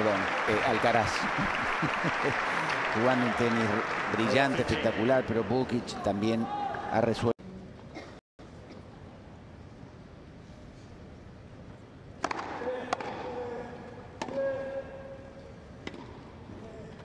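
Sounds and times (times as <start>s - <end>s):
racket striking tennis ball: 12.2s - 13.3s.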